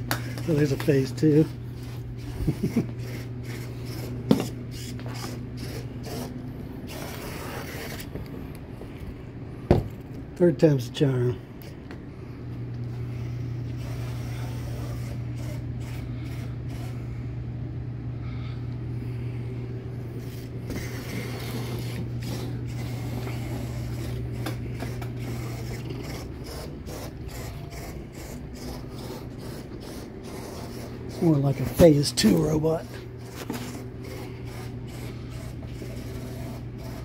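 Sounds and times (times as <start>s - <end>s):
electric motors humming: 0.0s - 37.0s.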